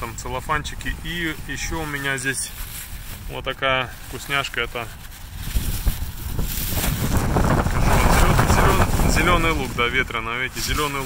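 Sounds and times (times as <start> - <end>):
plastic bag crinkling: 0.0 - 11.0
wind buffeting microphone: 0.0 - 11.0.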